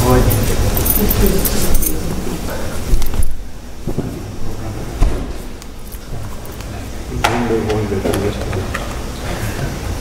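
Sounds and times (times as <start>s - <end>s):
people talking: 0.0s - 2.8s, 6.7s - 8.8s
low steady hum: 0.0s - 10.0s.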